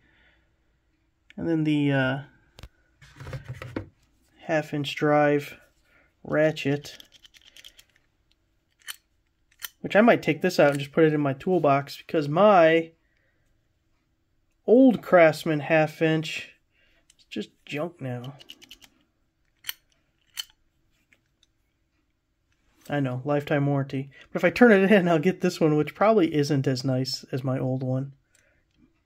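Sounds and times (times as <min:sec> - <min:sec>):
person speaking: 0:01.3 - 0:02.4, 0:03.0 - 0:07.1, 0:09.7 - 0:12.9, 0:14.6 - 0:16.6, 0:17.3 - 0:18.7, 0:22.8 - 0:28.2.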